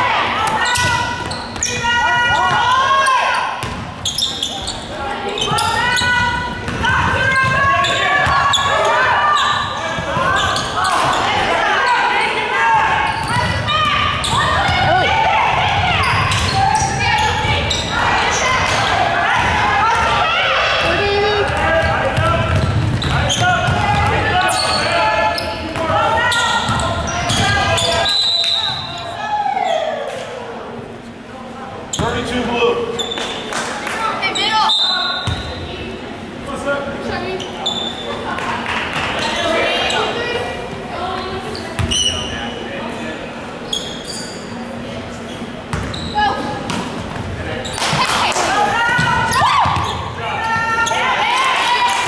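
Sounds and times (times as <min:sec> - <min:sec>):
overlapping voices in a hall: 0:06.2 - 0:28.7, 0:33.2 - 0:34.6, 0:38.1 - 0:41.8, 0:47.0 - 0:49.4, 0:50.2 - 0:52.0
basketball bouncing on hardwood floor: 0:21.5 - 0:24.2.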